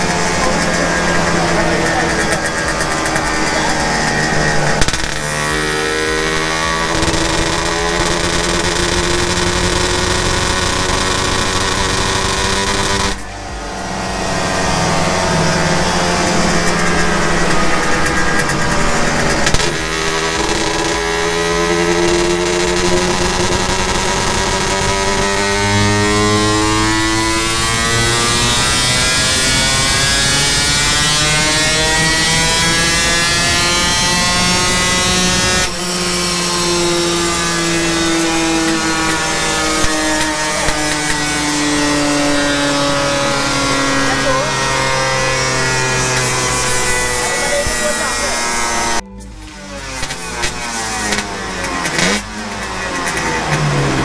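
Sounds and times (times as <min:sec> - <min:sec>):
motorcycle engine revving hard: 0:00.0 - 0:54.0.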